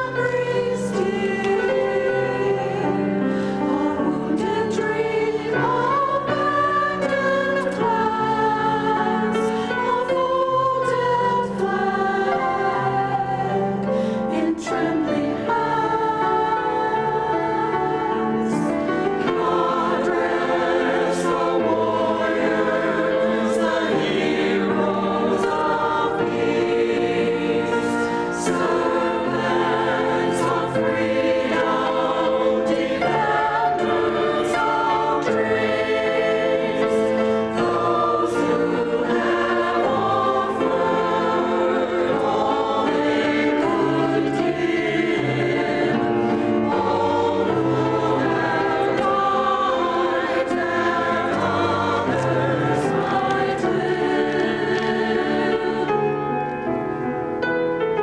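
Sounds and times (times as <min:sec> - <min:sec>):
grand piano accompaniment: 0:00.0 - 0:58.0
mixed choir singing: 0:00.0 - 0:58.0.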